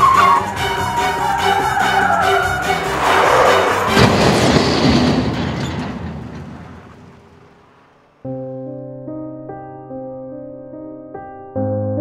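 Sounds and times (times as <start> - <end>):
car crash impact: 2.9 - 8.2
soft sad piano music: 8.2 - 12.0.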